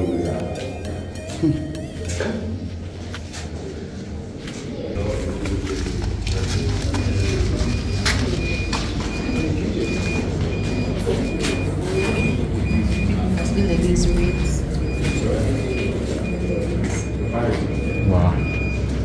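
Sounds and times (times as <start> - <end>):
faint murmuring voices: 0.0 - 19.0
high electronic beeps: 5.0 - 19.0.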